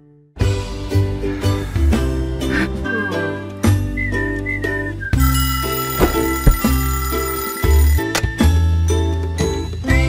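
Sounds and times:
background music: 0.0s - 10.0s
alarm clock bell ringing: 5.2s - 8.1s.

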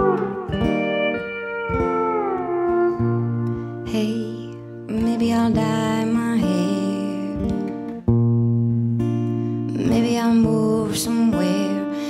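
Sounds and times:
acoustic guitar strumming: 0.0s - 12.0s
pedal steel guitar chords: 0.0s - 12.0s.

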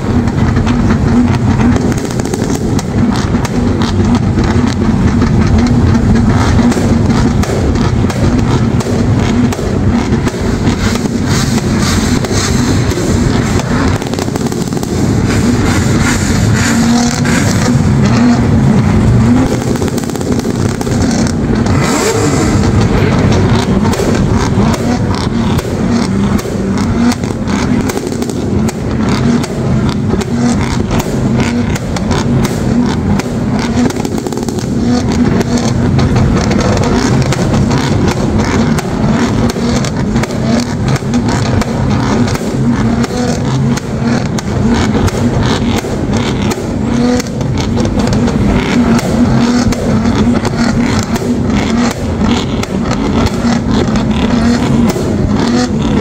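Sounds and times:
car engines running: 0.0s - 56.0s
exhaust pops and bangs: 0.0s - 56.0s.

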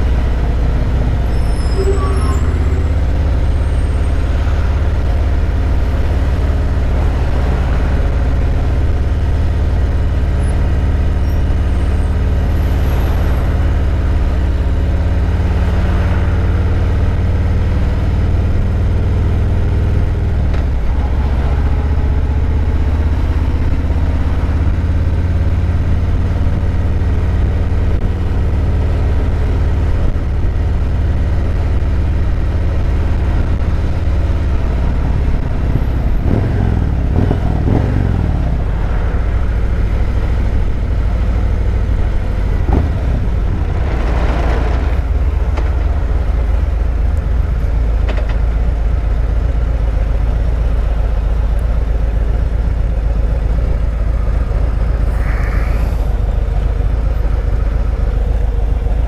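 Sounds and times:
motorcycle engine rumbling: 0.0s - 59.0s.

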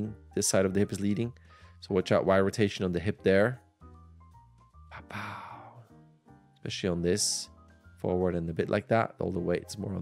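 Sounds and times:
faint background music: 0.0s - 10.0s
person exhaling softly: 5.0s - 5.8s.

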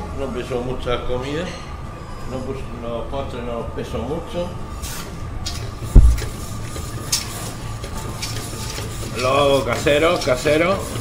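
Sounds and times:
kitchen extractor fan humming: 0.0s - 11.0s
dull low thump: 5.9s - 6.4s.

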